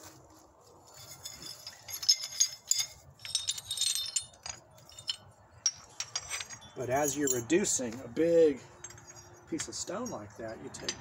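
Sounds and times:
stone flakes clinking: 0:00.9 - 0:08.0.

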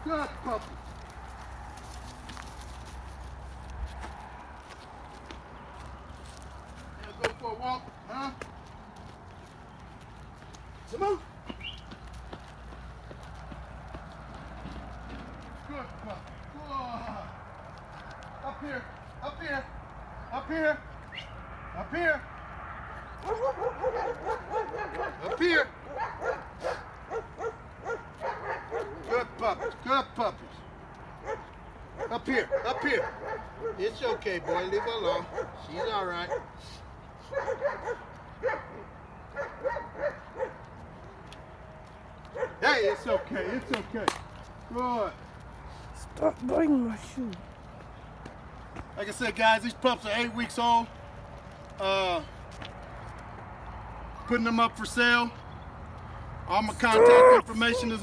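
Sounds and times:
puppies' paws clicking: 0:00.0 - 0:20.3, 0:22.4 - 0:58.0
footsteps on asphalt: 0:00.0 - 0:58.0
puppies yipping: 0:23.2 - 0:29.9, 0:31.2 - 0:36.5, 0:37.2 - 0:40.6.

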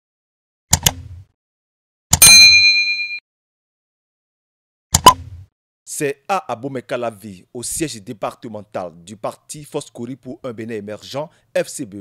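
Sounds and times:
notification bell ding: 0:02.2 - 0:03.2.

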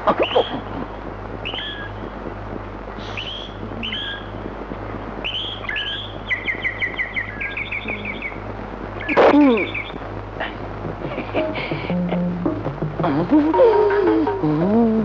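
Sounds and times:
steady low hum: 0:00.0 - 0:15.0
bird chirps and trill: 0:05.2 - 0:08.4.

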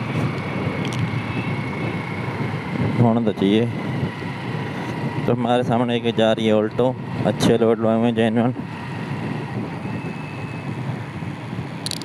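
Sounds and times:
motorcycle engine: 0:00.0 - 0:12.0
road noise: 0:00.0 - 0:12.0.

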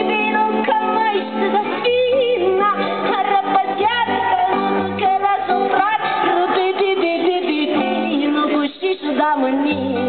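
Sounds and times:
acoustic guitar chords: 0:00.0 - 0:10.0
woman singing: 0:00.0 - 0:10.0.

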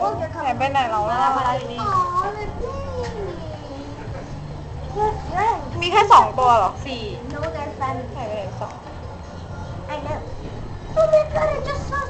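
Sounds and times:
low rumble of background noise: 0:00.0 - 0:12.0.

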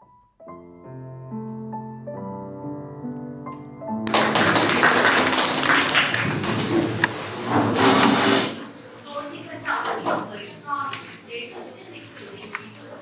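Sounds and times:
children clapping loudly: 0:04.1 - 0:07.1.

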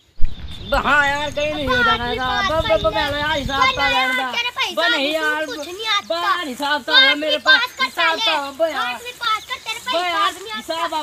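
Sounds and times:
boys talking: 0:00.5 - 0:11.0.

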